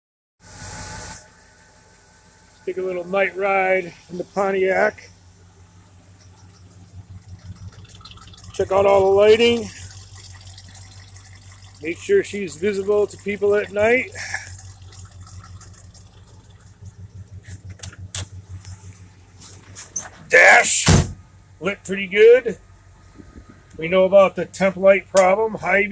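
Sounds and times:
loud hiss: 0:00.4 - 0:01.5
car engine idling: 0:00.4 - 0:25.9.

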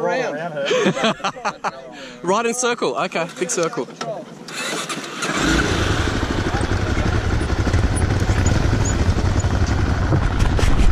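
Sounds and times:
dirt bike engine rumbling: 0:04.4 - 0:10.9.

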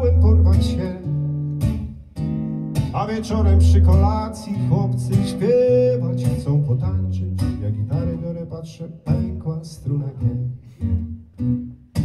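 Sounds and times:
man singing: 0:00.0 - 0:01.3, 0:02.9 - 0:10.8
acoustic guitar strumming: 0:00.0 - 0:12.0.

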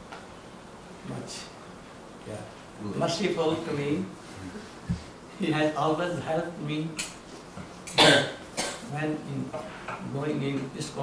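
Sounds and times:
man speaking: 0:02.3 - 0:04.6
man coughing: 0:08.0 - 0:08.9.

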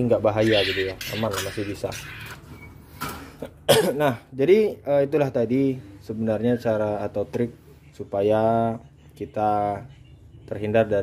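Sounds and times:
man speaking: 0:00.0 - 0:02.4
man coughing and clearing throat: 0:03.4 - 0:04.3.

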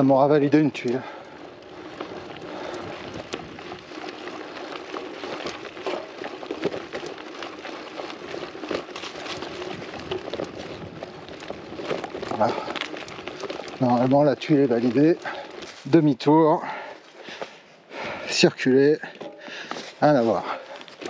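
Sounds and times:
bike knocks and rattles: 0:00.0 - 0:17.5, 0:19.0 - 0:21.0
bike tyres crunching on gravel: 0:00.0 - 0:21.0.

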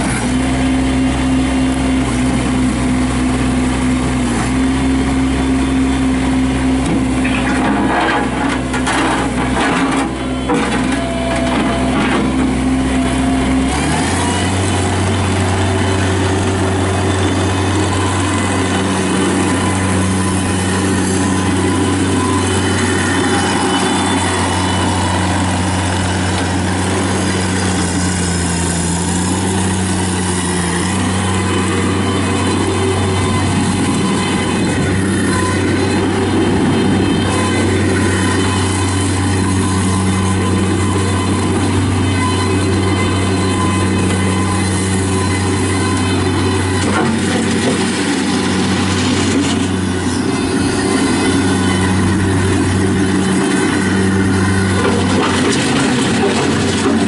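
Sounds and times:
diesel engine running: 0:00.0 - 0:57.0
knocks and clanks: 0:06.9 - 0:12.6, 0:54.5 - 0:57.0.

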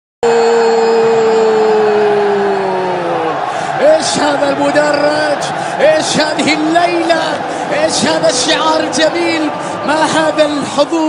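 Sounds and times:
crowd noise in stands: 0:00.2 - 0:11.0.

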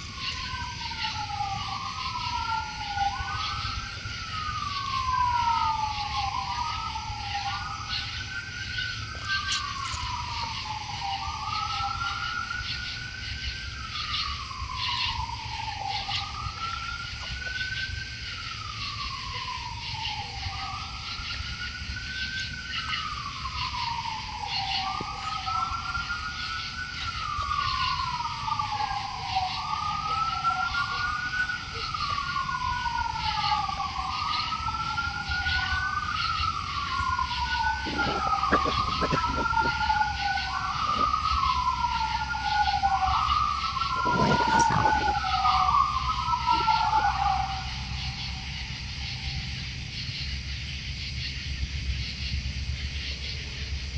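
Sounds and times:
distant sirens wailing: 0:00.0 - 0:53.9.

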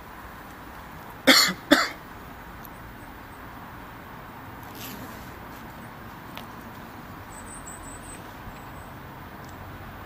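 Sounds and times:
man coughing: 0:01.3 - 0:02.0.

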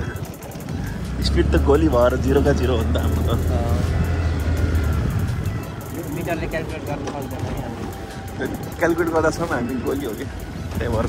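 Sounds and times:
scooter engine rumble: 0:00.0 - 0:11.0
wind on microphone: 0:03.0 - 0:11.0.

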